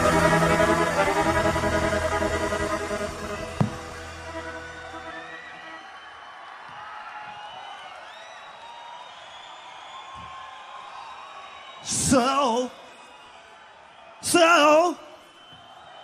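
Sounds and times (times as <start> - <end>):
crowd cheering and whooping: 0.0 - 16.0.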